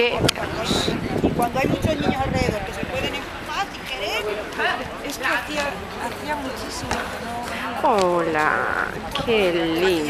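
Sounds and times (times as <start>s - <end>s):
background voices talking: 0.0s - 10.0s.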